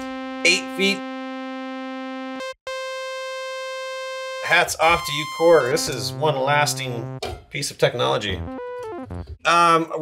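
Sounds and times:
synthesizer holding a note: 0.0 - 7.2, 8.4 - 9.3.

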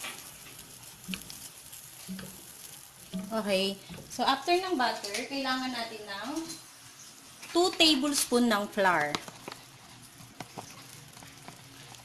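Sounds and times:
small pops: 0.0 - 4.2
butter sizzling in a saucepan: 0.0 - 12.0.

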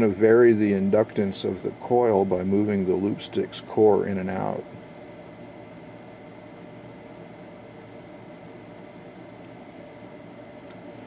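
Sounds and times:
faint hum tones: 0.0 - 11.0.

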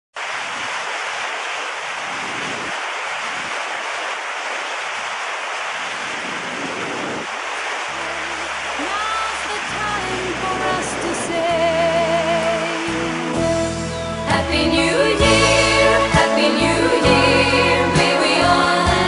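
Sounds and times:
churning foaming water: 0.2 - 19.0
music with low bass notes: 9.9 - 19.0.

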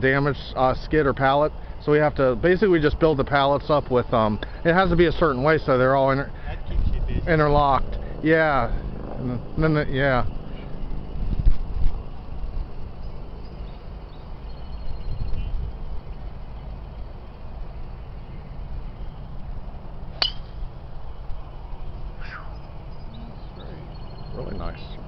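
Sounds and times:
wind rumble on microphone: 6.2 - 25.0
golf club striking ball: 20.1 - 20.7.

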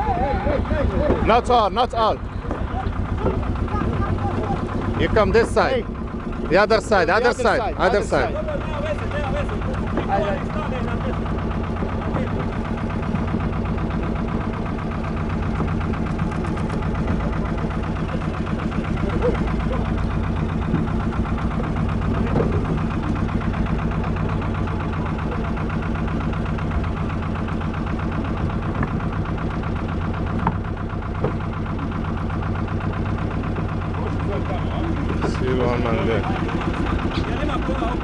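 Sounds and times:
boat engine idling: 0.0 - 38.0.

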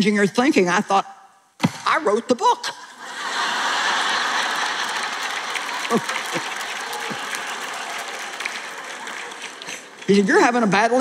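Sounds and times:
audience laughter: 3.0 - 6.6
audience applause: 3.1 - 10.6.

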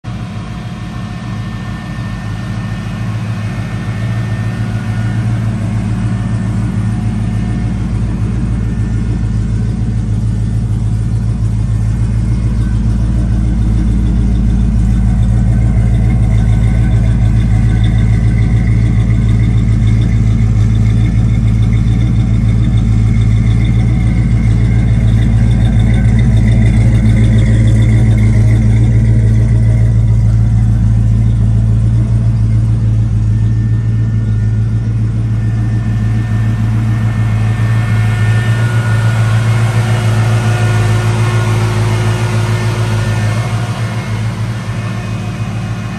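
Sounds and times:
car engine idling: 0.0 - 45.9.

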